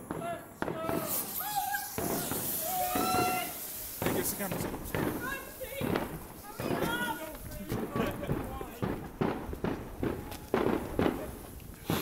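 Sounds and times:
fireworks fuse fizzing: 0.0 - 12.0
people laughing and exclaiming: 0.7 - 3.8, 5.1 - 8.9.

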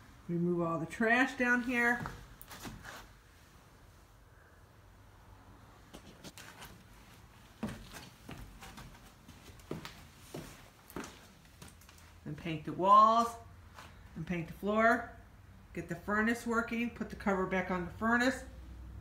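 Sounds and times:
quiet room hum: 0.0 - 19.0
scuffs and knocks of moving about: 1.3 - 3.8, 5.8 - 14.2.

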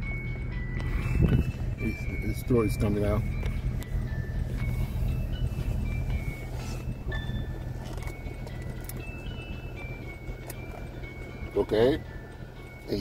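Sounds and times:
car engine idling hum: 0.0 - 13.0.

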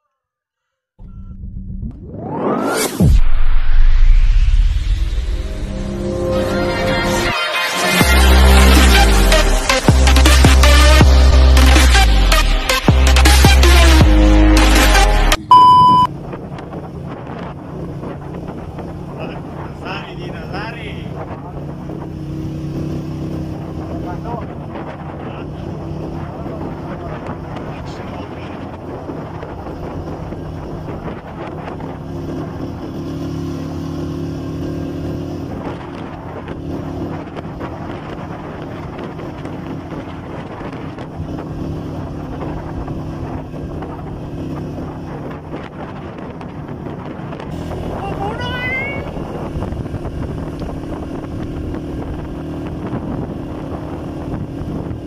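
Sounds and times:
motorcycle engine running: 8.0 - 55.0
wind buffeting microphone: 16.1 - 55.0.

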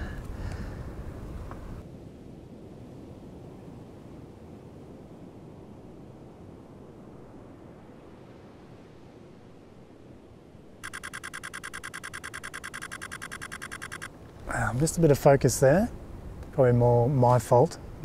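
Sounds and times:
faint wind: 0.0 - 18.0.

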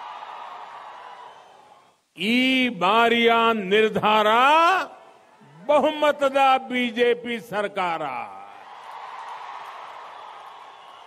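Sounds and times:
large crowd cheering: 0.0 - 2.0, 8.5 - 11.0.

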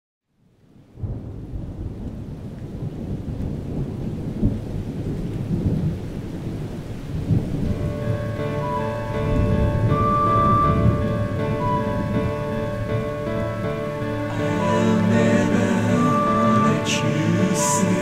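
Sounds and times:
heavy rain: 0.4 - 18.0
low rumbling thunder: 0.9 - 17.9
held music chords: 7.8 - 18.0.

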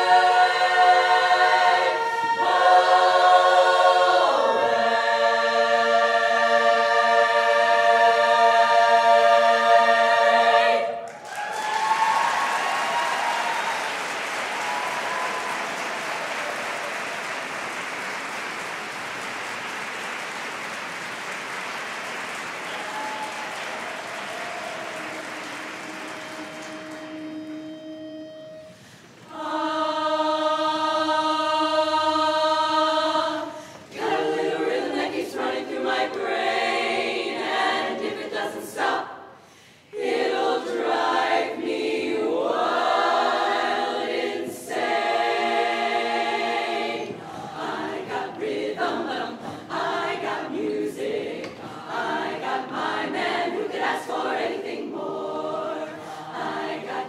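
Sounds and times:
women's a cappella chorus singing: 0.0 - 11.1, 28.4 - 57.0
audience applauding: 11.0 - 27.8.

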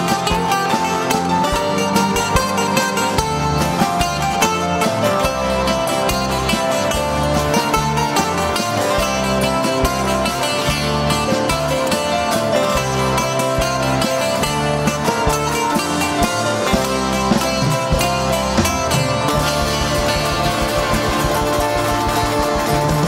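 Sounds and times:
acoustic guitars strumming: 0.0 - 23.0
bass line: 0.0 - 23.0
bouzouki melody: 0.0 - 23.0
steady drum beat: 0.0 - 23.0.

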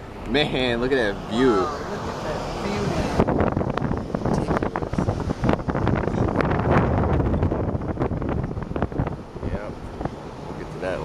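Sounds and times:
moving car rumble: 0.0 - 11.0
wind buffeting microphone: 0.7 - 11.0.

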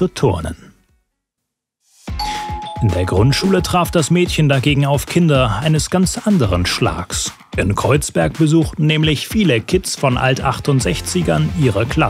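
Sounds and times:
two-tone doorbell chime: 2.2 - 4.4.

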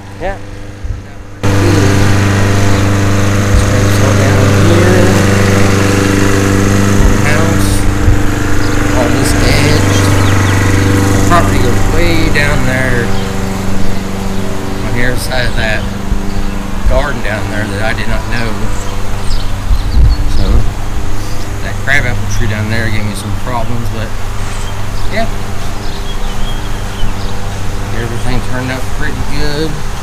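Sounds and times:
lawn mower engine running: 0.0 - 30.0.

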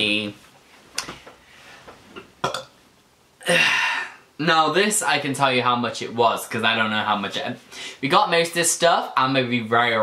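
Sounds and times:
man burping: 2.4 - 2.7, 3.4 - 4.3.

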